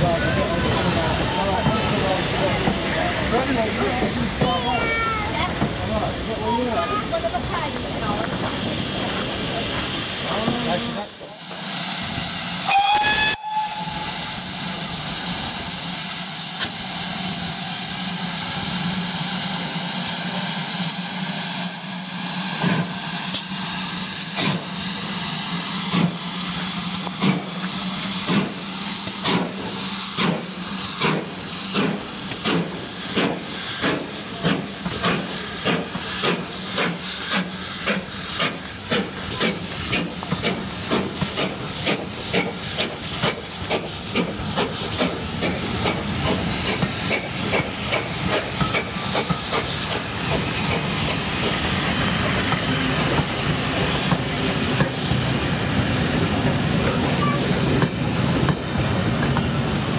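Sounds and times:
steam hissing from cylinders: 0.0 - 59.9
steam locomotive exhaust beats: 7.0 - 59.9.

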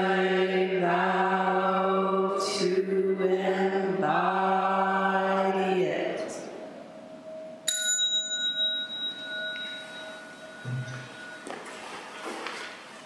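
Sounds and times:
small bell ringing: 7.6 - 12.2.

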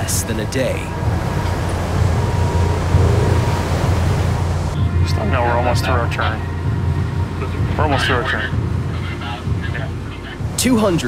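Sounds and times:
seawater rushing along hull: 0.0 - 11.0
ship engine rumble: 0.0 - 11.0.

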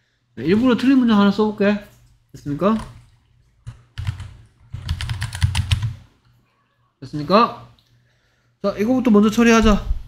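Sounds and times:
typing on computer keyboard: 3.7 - 6.0.

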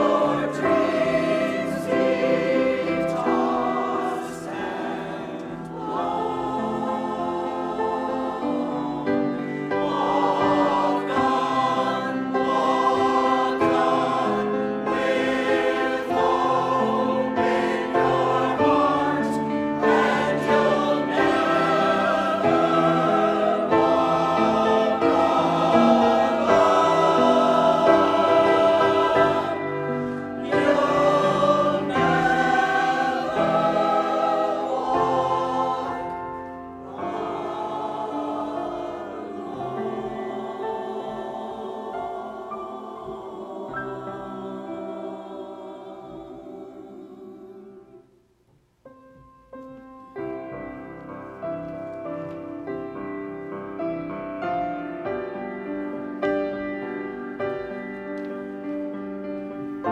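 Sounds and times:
choir singing: 0.0 - 48.3, 50.2 - 59.9.

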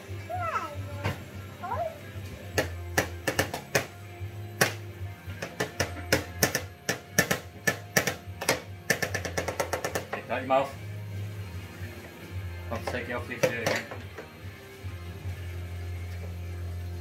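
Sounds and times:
background music: 0.0 - 17.0
spoons banging on plastic tray: 5.4 - 10.3, 12.8 - 14.1.

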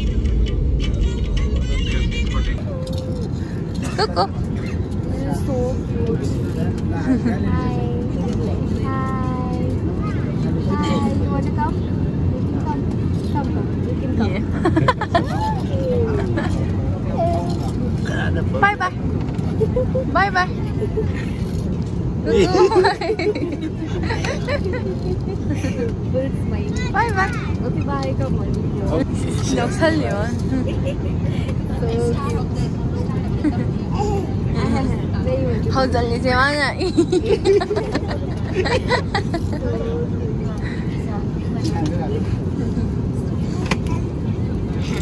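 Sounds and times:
people talking: 0.0 - 21.6, 22.2 - 45.0
airliner cabin rumble: 0.0 - 45.0.

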